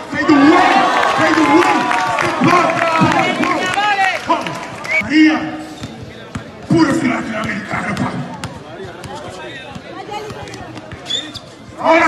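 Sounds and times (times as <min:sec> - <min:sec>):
people talking: 0:02.4 - 0:11.1
basketball bouncing: 0:05.8 - 0:11.1.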